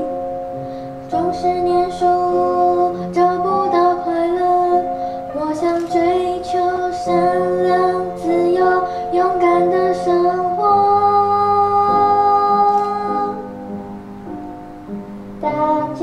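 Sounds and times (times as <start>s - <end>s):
girl singing: 0.0s - 13.5s, 15.4s - 16.0s
backing music: 0.0s - 16.0s.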